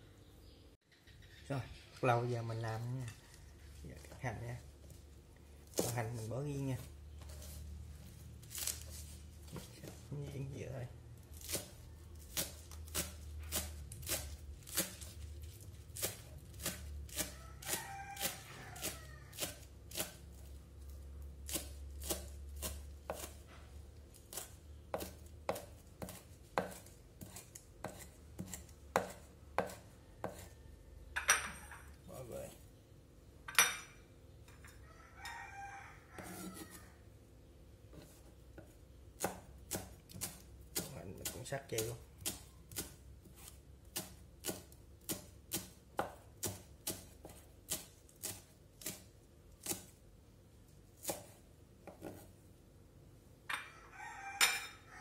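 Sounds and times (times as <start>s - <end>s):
knife chopping on wooden board: 5.7s - 6.3s, 11.4s - 15.2s, 16.0s - 20.2s, 21.5s - 23.4s, 24.3s - 30.5s, 38.0s - 49.9s, 51.0s - 52.3s.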